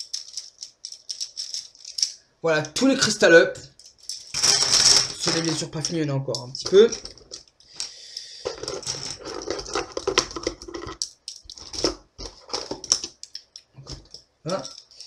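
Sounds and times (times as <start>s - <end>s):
plastic pens clattering: 0.0s - 2.2s, 3.7s - 15.0s.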